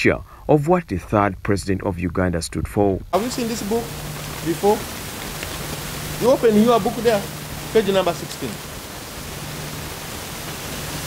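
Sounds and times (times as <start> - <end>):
faint low hum: 0.0 - 11.0
steady background hiss: 0.0 - 11.0.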